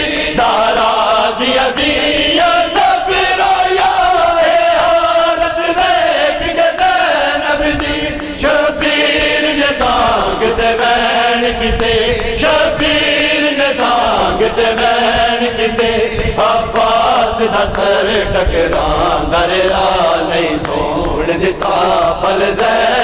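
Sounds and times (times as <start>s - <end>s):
men chanting in unison: 0.0s - 23.0s.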